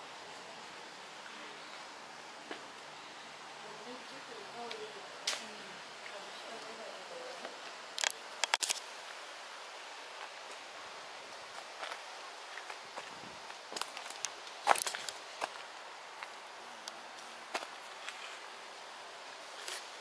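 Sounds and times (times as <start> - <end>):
outdoor hiss: 0.0 - 20.0.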